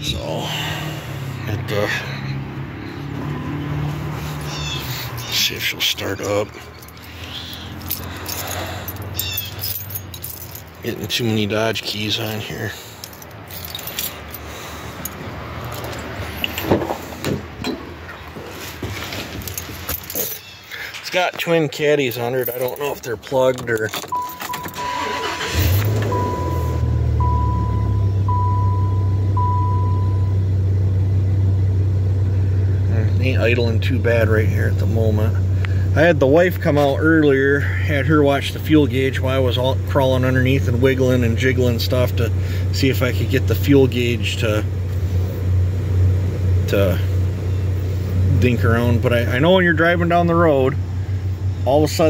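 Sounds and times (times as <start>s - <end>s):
truck engine starting and idling: 0.0s - 52.0s
keys jangling on key ring: 6.2s - 10.8s, 12.9s - 16.7s, 19.3s - 20.5s, 22.1s - 26.2s
low steady hum: 22.2s - 36.5s
dashboard warning chime: 24.0s - 30.7s.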